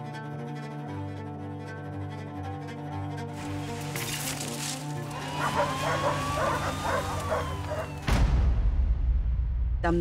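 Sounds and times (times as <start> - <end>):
low drone of film music: 0.0 - 9.5
dog barking: 5.3 - 8.0.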